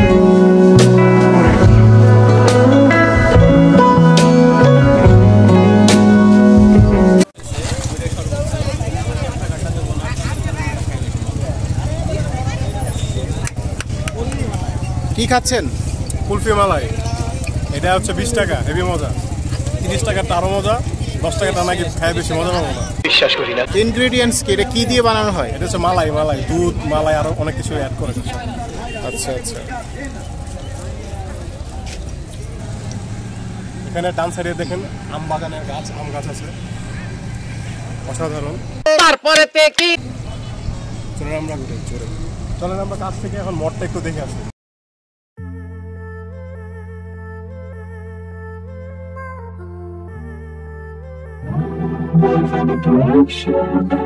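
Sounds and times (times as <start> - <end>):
small engine idling: 7.4 - 23.0, 24.1 - 38.8
voices talking: 7.4 - 42.4, 51.4 - 54.0.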